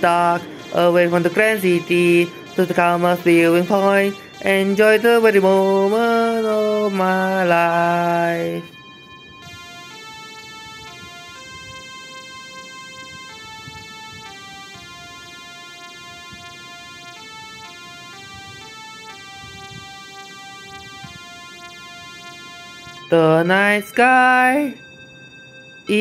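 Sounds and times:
electronic keyboard melody: 0:00.0 - 0:26.0.

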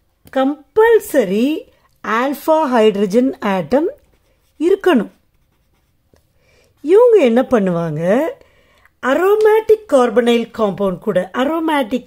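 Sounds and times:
person speaking: 0:00.3 - 0:06.0, 0:06.8 - 0:08.4, 0:09.0 - 0:12.0
marker writing on paper: 0:03.9 - 0:06.2.

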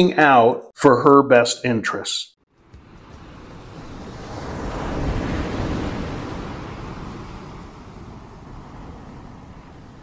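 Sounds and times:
ocean wave washing in: 0:02.6 - 0:10.0.

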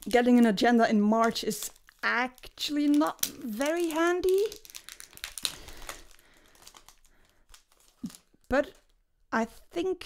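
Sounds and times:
paper and packaging crinkling: 0:01.1 - 0:09.0.

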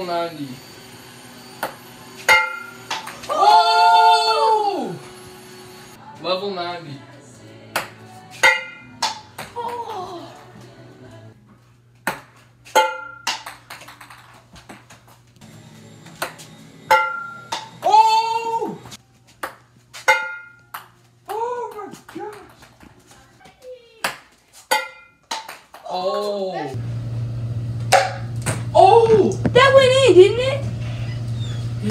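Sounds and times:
ping-pong ball bouncing: 0:01.6 - 0:03.3, 0:07.8 - 0:09.8, 0:12.0 - 0:14.3, 0:16.2 - 0:17.8, 0:19.4 - 0:22.6, 0:24.0 - 0:25.9
person exclaiming oh: 0:03.2 - 0:05.0, 0:09.6 - 0:10.4, 0:17.8 - 0:18.8, 0:21.3 - 0:22.4.

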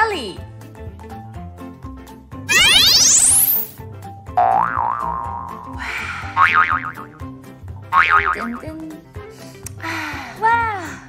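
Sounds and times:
light background music: 0:00.0 - 0:11.0
cartoon rising swoop: 0:02.5 - 0:03.8
wobbling boing sounds: 0:04.4 - 0:05.8, 0:06.4 - 0:07.3, 0:07.9 - 0:08.6.

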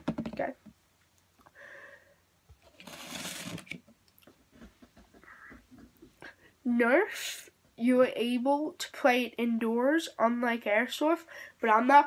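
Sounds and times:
paper plate scraping on wood: 0:02.8 - 0:03.8.

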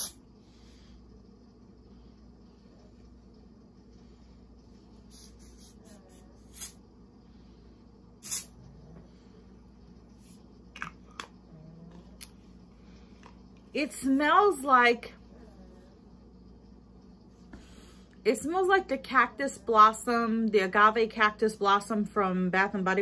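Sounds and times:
person sniffing: 0:08.2 - 0:08.5.

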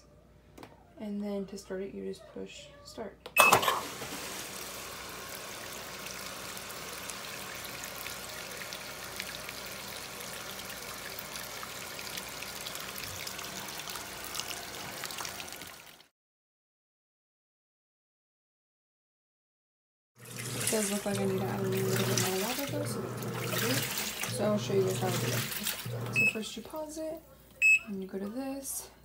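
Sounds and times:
water pouring into washing machine tub: 0:03.6 - 0:16.1, 0:20.2 - 0:26.4.

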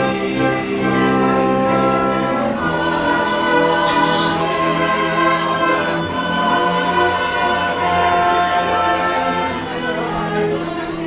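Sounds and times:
instrumental accompaniment: 0:00.0 - 0:11.0
opera voices singing held notes: 0:00.0 - 0:11.0
tuba sustained low line: 0:00.0 - 0:11.0.

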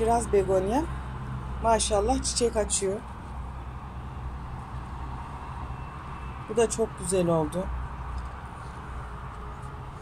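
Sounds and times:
person speaking: 0:01.6 - 0:03.1, 0:06.5 - 0:07.8.

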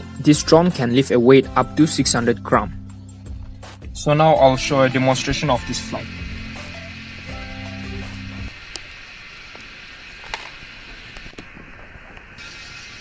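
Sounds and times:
background music: 0:00.0 - 0:08.6
steady hiss: 0:03.0 - 0:13.0.

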